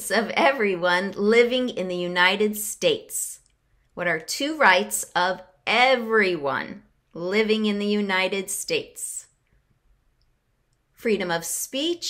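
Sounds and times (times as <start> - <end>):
woman speaking: 0.0 - 9.4, 11.0 - 12.0.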